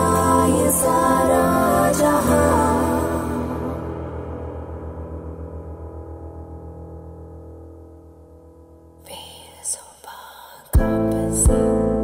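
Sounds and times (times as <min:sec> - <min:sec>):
eerie whisper: 0:00.0 - 0:04.4, 0:09.0 - 0:11.4
low pulsing drone: 0:00.0 - 0:06.2.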